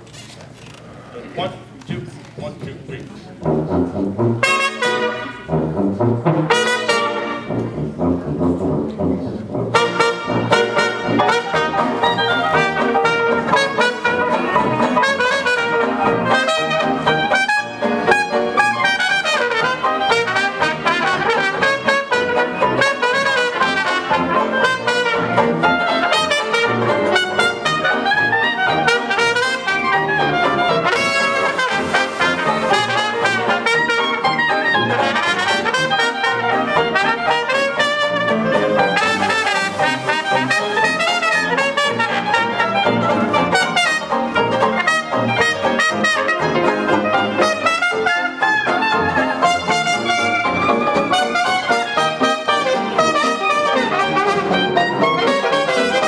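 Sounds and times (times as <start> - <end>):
rhythm section: 2.6 - 56.0
piano: 3.4 - 56.0
trombone: 3.4 - 56.0
trumpet: 3.4 - 56.0.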